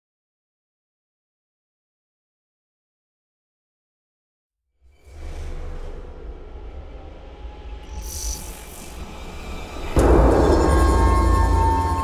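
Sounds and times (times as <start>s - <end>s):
deep rumbling drone: 4.9s - 12.0s
sharp hit with ringing tones: 10.0s - 12.0s.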